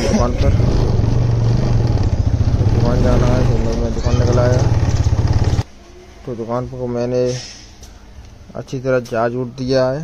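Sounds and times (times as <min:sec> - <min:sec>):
motorcycle engine droning: 0:00.0 - 0:05.6.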